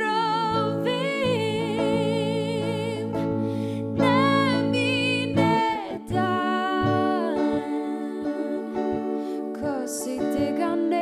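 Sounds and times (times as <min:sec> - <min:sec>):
plucked string notes: 0:00.0 - 0:11.0.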